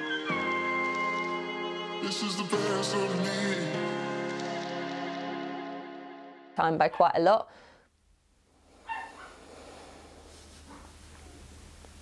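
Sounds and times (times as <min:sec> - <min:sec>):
pet whining: 0:08.8 - 0:11.6.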